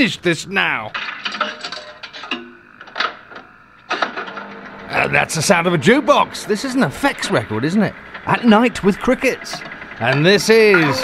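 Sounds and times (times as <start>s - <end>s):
faint steady tones: 4.9s - 11.0s
jukebox mechanical clicks: 7.9s - 11.0s.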